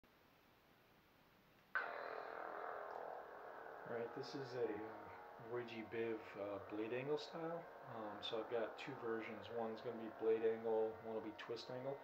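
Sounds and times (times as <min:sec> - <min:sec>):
lightsaber hum: 0:01.8 - 0:12.0.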